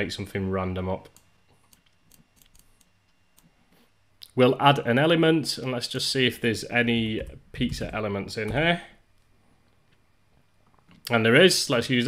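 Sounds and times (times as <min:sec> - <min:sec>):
computer mouse clicks: 0:01.1 - 0:03.5.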